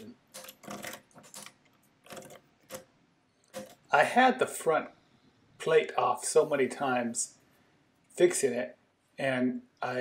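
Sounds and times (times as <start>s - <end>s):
metallic calculator clicks: 3.5s - 3.9s.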